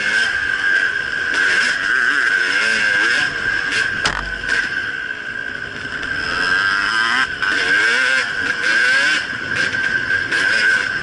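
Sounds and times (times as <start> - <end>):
dirt bike engine revving: 0.0 - 11.0.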